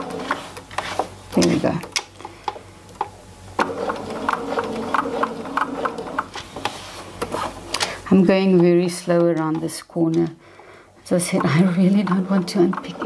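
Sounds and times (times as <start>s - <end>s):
sewing machine motor humming: 3.6s - 6.4s, 11.2s - 13.0s
sewing machine stitch ticks: 11.3s - 13.0s.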